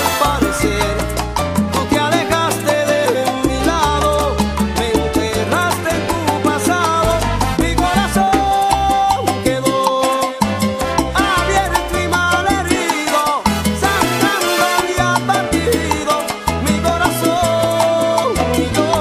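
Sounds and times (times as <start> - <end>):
salsa dance band music: 0.0 - 19.0.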